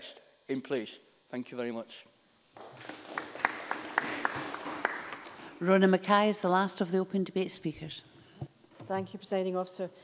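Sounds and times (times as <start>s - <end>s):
people applauding: 2.6s - 5.6s.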